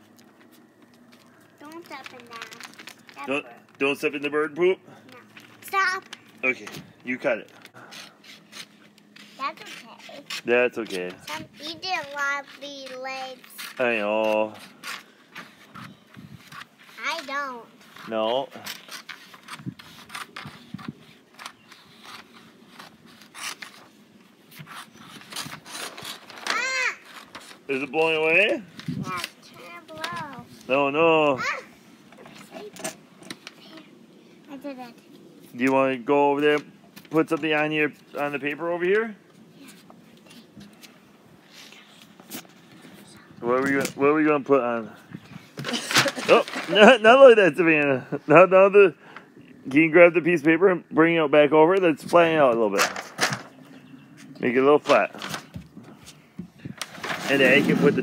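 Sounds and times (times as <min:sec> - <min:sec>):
paper rustling: 0:00.0 - 0:04.0, 0:05.1 - 0:30.7, 0:45.6 - 0:47.1
faint rustling: 0:00.0 - 0:04.2.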